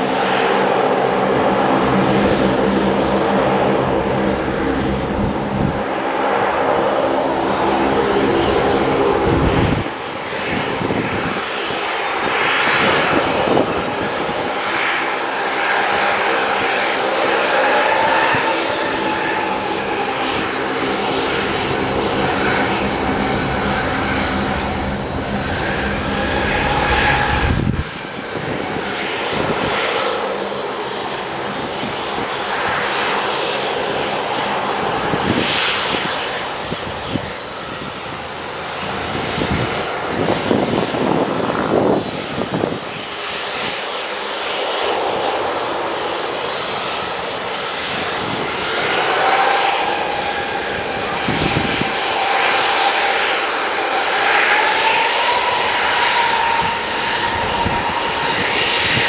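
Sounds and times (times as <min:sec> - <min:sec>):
jet engines at taxi power: 0:00.0 - 0:59.0.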